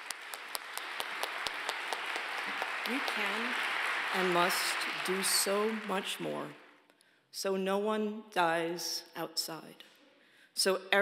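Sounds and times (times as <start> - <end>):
sharp single claps: 0.0 - 4.2
audience applauding: 0.0 - 6.6.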